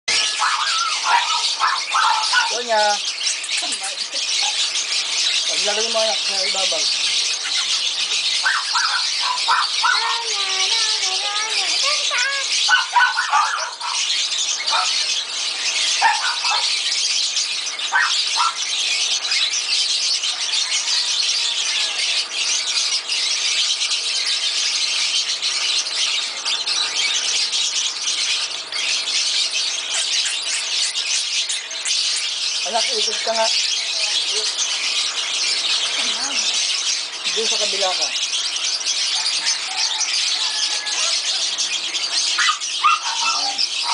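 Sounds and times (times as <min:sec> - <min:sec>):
caged birds chattering: 0:00.1 - 0:43.9.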